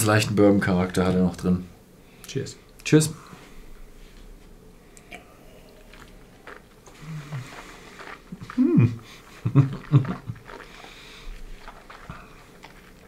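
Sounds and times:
lip and mouth clicks: 5.0 - 13.0
man's low throaty hums: 6.9 - 7.5, 8.4 - 9.1.

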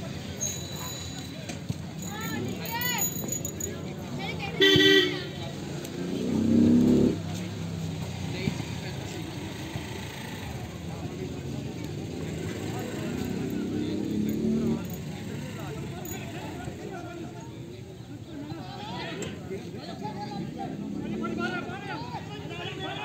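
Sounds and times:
road traffic: 0.0 - 23.0
voices calling: 0.0 - 23.0
vehicle horn tooting: 4.6 - 5.4.

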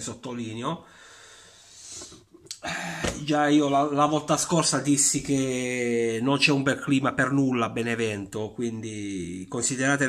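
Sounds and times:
man speaking: 0.0 - 0.8, 3.1 - 10.0
man breathing in through mouth: 0.9 - 3.2.

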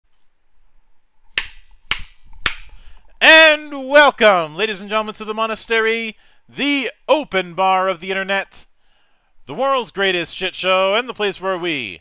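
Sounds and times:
sharp clicks: 1.4 - 3.1
man speaking: 3.2 - 8.7, 9.4 - 12.0.

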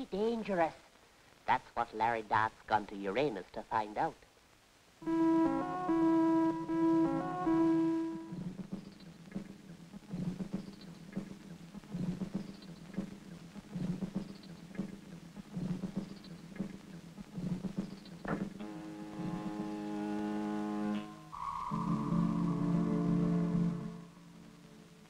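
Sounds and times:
held electronic chord: 5.0 - 8.4, 18.6 - 25.0.

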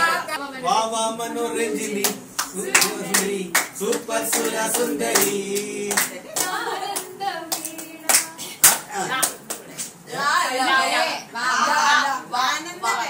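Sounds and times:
hands clapping: 2.0 - 9.9.

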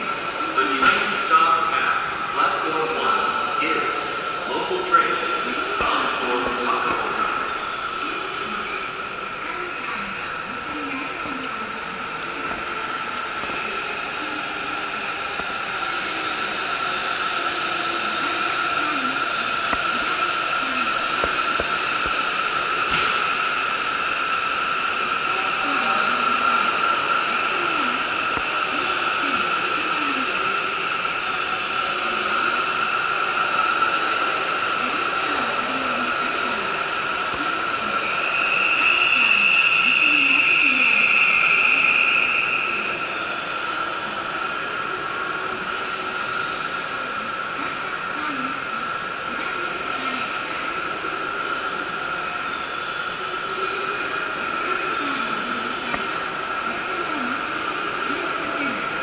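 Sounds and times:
steady mechanical hum: 0.0 - 59.0
high hissing tone: 36.7 - 44.0.

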